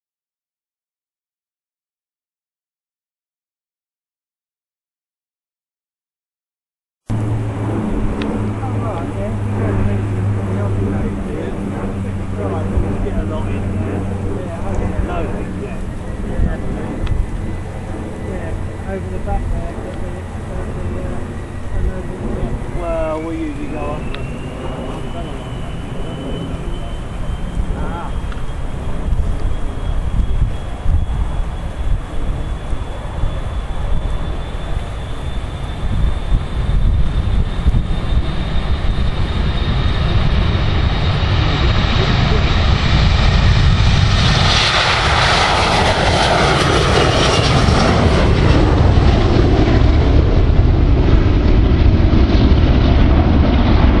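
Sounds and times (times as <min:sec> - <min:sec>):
jet engines at take-off: 0:07.1 - 0:54.0.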